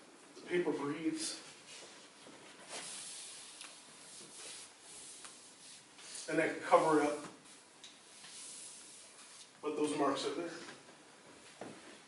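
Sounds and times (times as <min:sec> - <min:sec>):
hand rubbing paper: 0:01.4 - 0:09.6.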